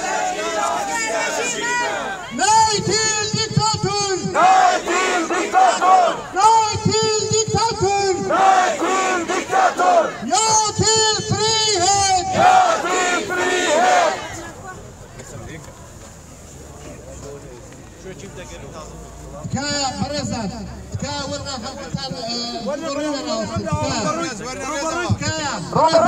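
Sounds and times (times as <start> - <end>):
crowd chanting: 0.0 - 2.9, 4.2 - 6.4, 8.2 - 10.3, 12.2 - 14.6
man chanting through a megaphone: 0.0 - 14.1, 19.4 - 26.0.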